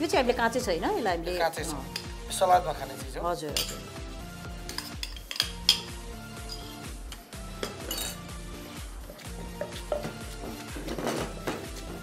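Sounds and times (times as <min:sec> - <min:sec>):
metal spoon clinking on bowl: 0:03.5 - 0:03.9, 0:04.7 - 0:06.8, 0:07.6 - 0:08.2.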